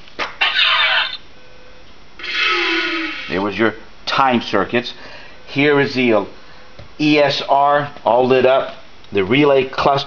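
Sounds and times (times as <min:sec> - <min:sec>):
electronic power-up sweep: 0:02.2 - 0:03.4.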